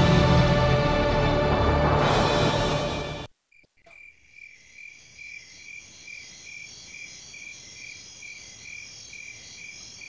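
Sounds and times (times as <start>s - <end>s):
crickets chirping: 3.4s - 10.0s.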